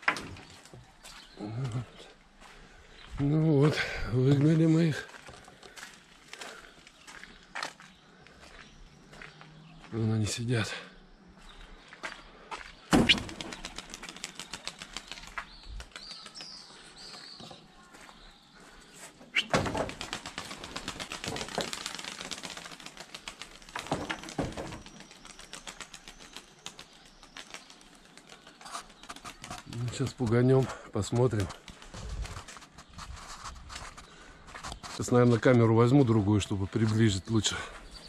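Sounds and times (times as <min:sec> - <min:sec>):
pigeon wingbeats clattering: 0:13.0 - 0:16.5, 0:19.4 - 0:35.0
high bird chirps: 0:19.2 - 0:19.8.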